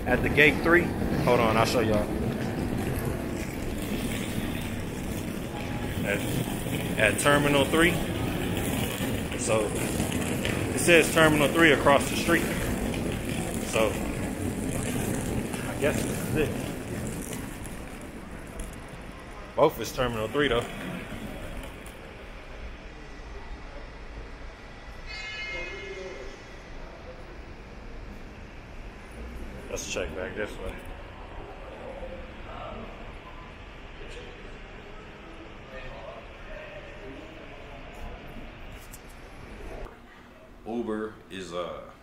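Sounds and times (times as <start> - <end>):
low rumble of traffic: 0.0 - 25.3.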